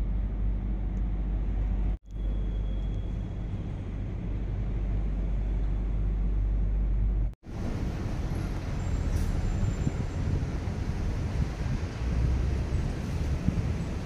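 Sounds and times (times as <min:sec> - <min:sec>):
low rumble and hiss: 0:00.0 - 0:14.0.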